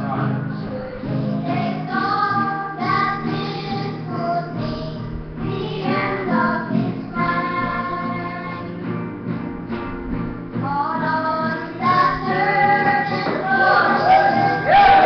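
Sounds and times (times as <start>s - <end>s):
person singing: 0.0s - 8.8s, 10.6s - 15.0s
instrumental accompaniment: 0.0s - 15.0s.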